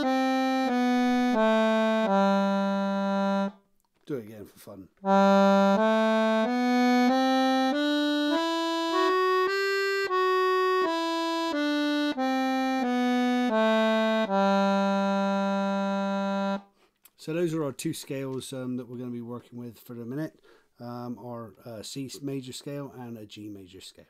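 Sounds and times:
accordion playing a scale: 0:00.0 - 0:03.6, 0:05.0 - 0:16.7.

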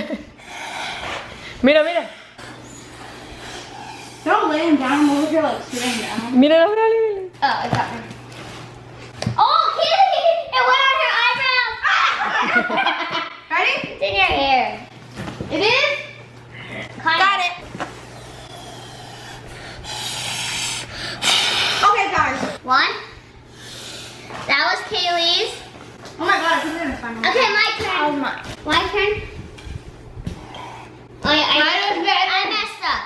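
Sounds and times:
breath blown through a straw: 0:18.1 - 0:22.0.

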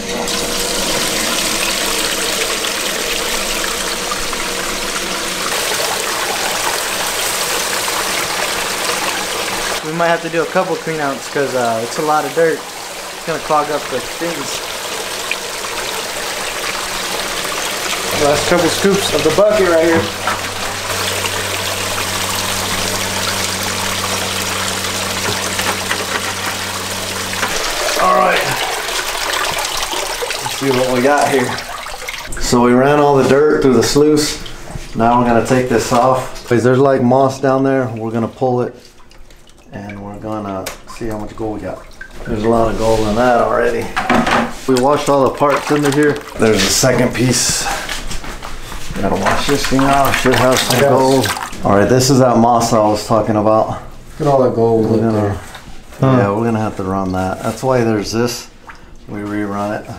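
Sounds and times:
water rushing through sluice: 0:00.0 - 0:32.4, 0:49.0 - 0:51.6
low electric pump hum: 0:00.0 - 0:59.9.

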